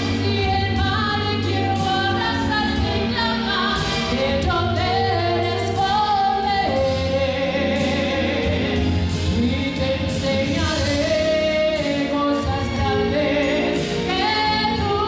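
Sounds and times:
backing music: 0.0s - 15.0s
woman singing gospel: 0.0s - 15.0s.

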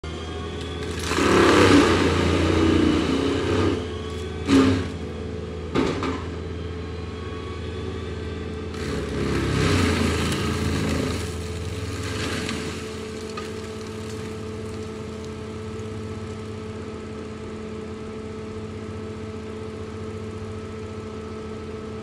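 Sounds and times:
track loader mulcher engine: 0.0s - 22.0s.

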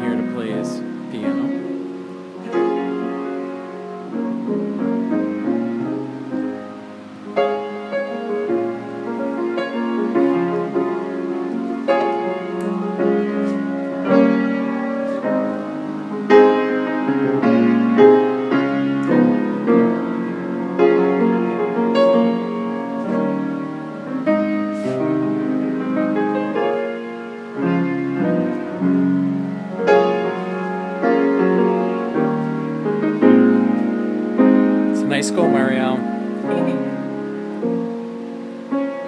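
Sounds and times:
piano chords: 0.0s - 39.0s.

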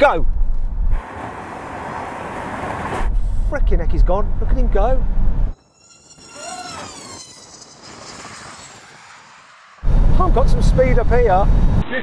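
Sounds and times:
steady rushing noise: 0.2s - 12.0s
drone motors whining: 5.5s - 10.1s.

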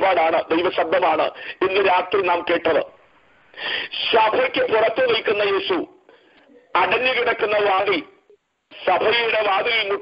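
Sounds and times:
man preaching over telephone: 0.0s - 3.0s, 3.9s - 6.1s, 6.7s - 10.0s.

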